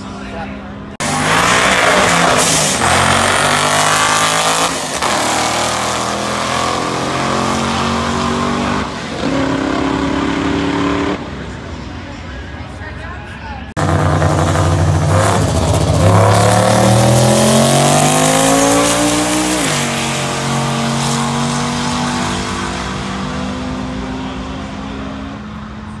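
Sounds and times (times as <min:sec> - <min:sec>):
car engines revving to full throttle: 0:00.0 - 0:11.8, 0:13.8 - 0:26.0.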